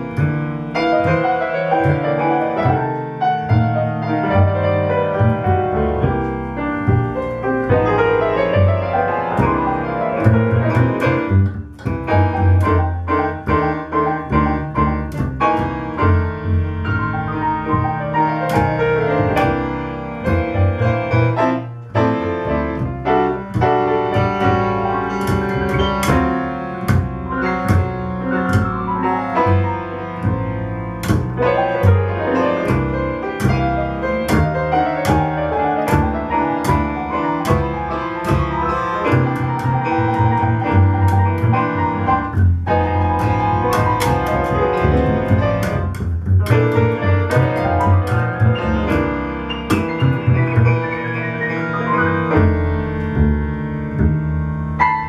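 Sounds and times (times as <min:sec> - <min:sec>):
grand piano: 0:00.0 - 0:55.0
plucked double bass: 0:00.0 - 0:55.0.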